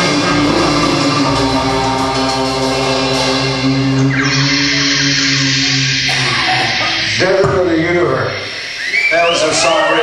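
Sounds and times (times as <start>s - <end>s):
rock band closing chord: 0.0s - 7.6s.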